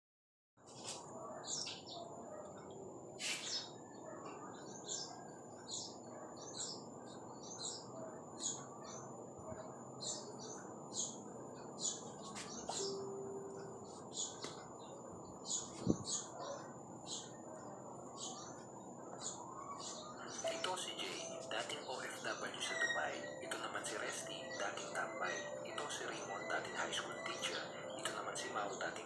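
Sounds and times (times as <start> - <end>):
bird chirping: 0.6 - 29.0.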